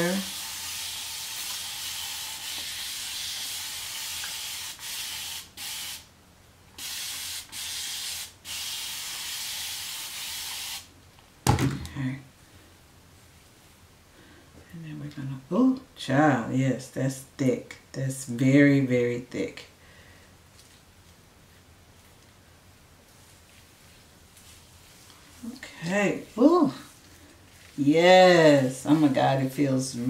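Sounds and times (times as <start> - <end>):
spray bottle hissing: 0.0 - 6.1, 6.8 - 10.9.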